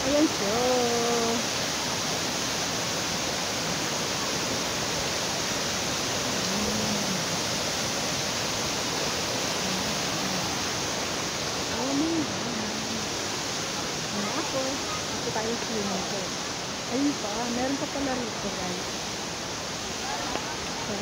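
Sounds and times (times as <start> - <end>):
waterfall rushing: 0.0 - 21.0.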